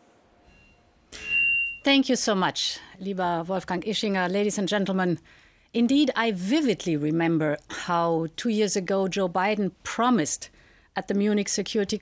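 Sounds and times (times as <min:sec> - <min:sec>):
woman speaking: 0:01.8 - 0:05.2, 0:05.8 - 0:12.0.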